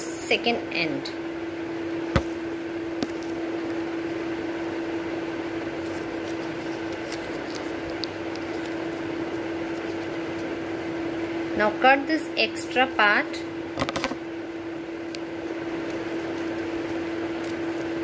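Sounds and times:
appliance humming: 0.0s - 18.0s.

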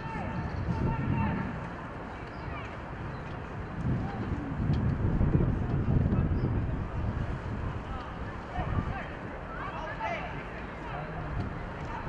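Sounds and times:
wind rumble on microphone: 0.0s - 9.5s, 11.1s - 12.0s.

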